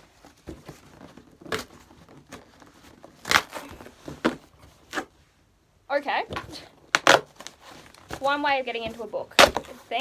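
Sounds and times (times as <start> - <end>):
cardboard box tearing: 0.8 - 5.1.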